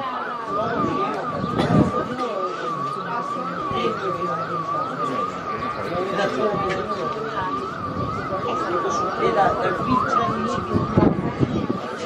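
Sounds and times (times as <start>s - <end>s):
siren yelping: 0.0s - 12.0s
voices talking: 0.0s - 12.0s.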